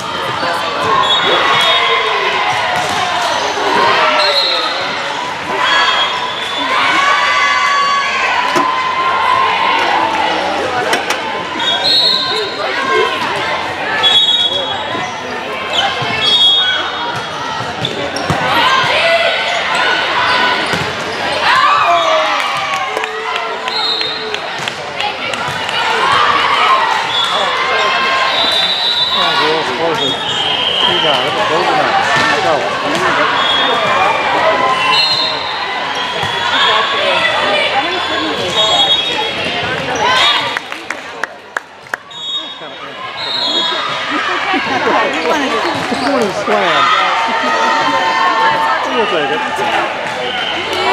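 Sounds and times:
volleyball hits: 2.5 - 3.3
players calling out: 42.0 - 50.9.

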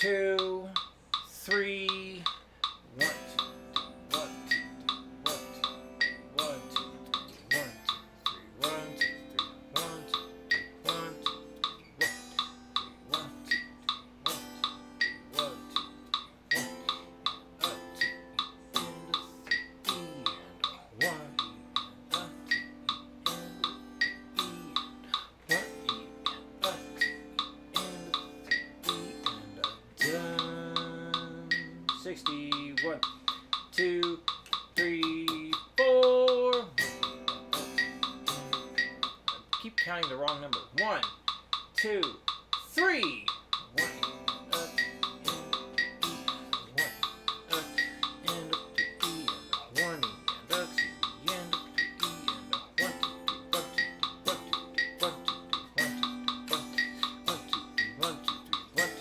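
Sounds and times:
metronome clicks: 0.0 - 59.0
electric guitar chords: 2.9 - 34.3, 36.4 - 39.4, 43.6 - 59.0.

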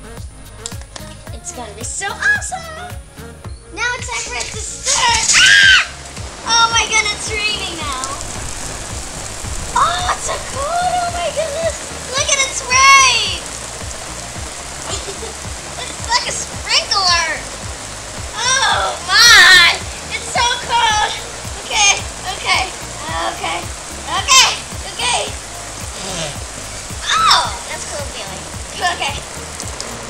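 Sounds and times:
water spray pattering: 0.0 - 30.0
child squealing: 4.9 - 7.1, 9.8 - 13.4, 18.4 - 22.0, 24.1 - 24.6, 27.0 - 27.8.

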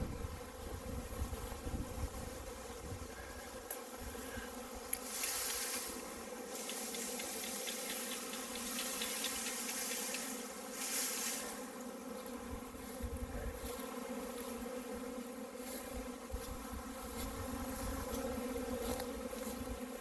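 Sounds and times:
bees buzzing: 0.0 - 20.0.

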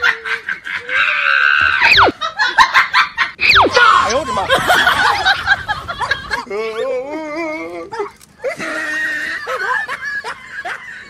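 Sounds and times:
laughter-like calls: 0.0 - 7.0
warbling pitched cry: 1.2 - 2.2, 3.4 - 4.5.

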